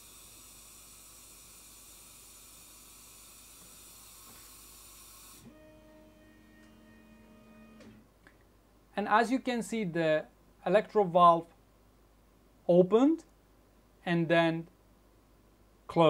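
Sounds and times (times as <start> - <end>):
compressed air hissing: 0.0 - 5.5
faint steady whine: 0.0 - 16.0.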